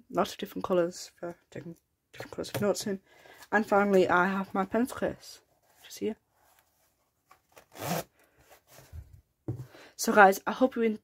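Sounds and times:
soft handling sounds: 2.2 - 9.8
pencil case rustle: 5.5 - 9.1.

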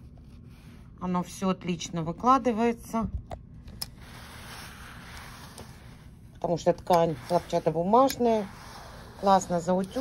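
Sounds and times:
steam iron hissing: 4.0 - 6.1, 6.9 - 10.0.

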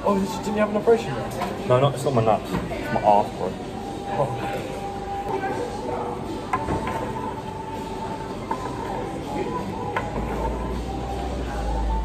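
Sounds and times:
murmur of background voices: 0.0 - 12.0.

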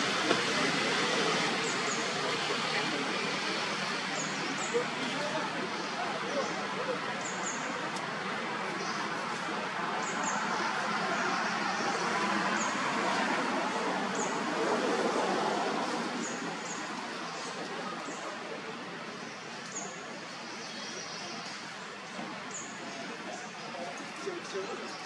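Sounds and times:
outdoor background noise: 0.0 - 25.0.

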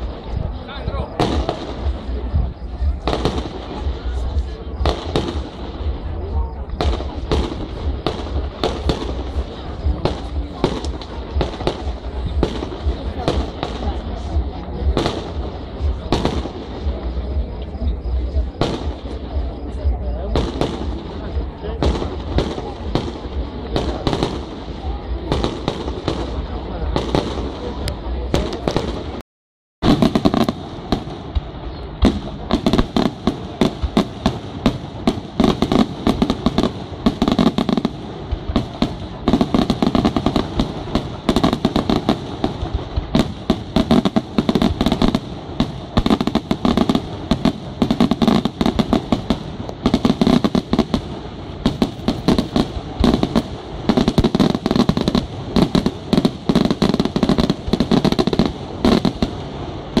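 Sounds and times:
fireworks bursting: 0.0 - 29.2, 29.8 - 60.0.

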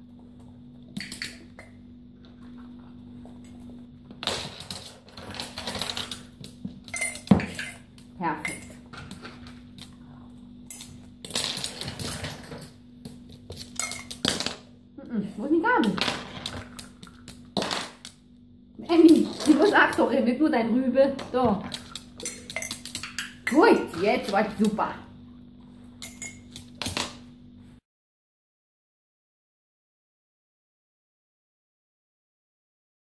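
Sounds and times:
faint steady hum: 0.0 - 27.8
clinks and rattles in ceramic mug: 6.9 - 7.8, 21.7 - 24.0, 26.0 - 26.6.

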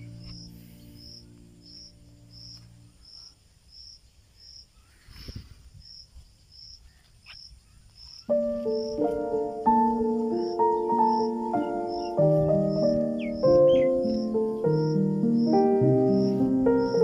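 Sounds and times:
background music: 0.0 - 3.0, 8.3 - 17.0
insect chirping: 0.0 - 17.0.

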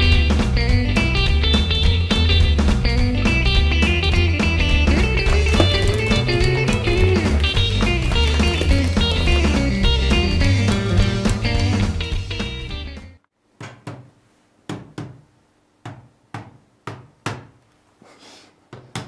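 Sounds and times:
guitar-led rock music: 0.0 - 13.2.

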